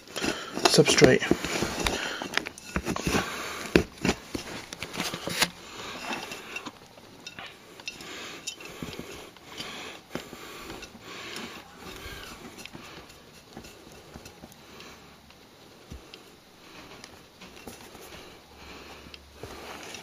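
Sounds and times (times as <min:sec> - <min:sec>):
hands scraping soil in plant pot: 0:00.2 - 0:06.7, 0:07.3 - 0:14.6.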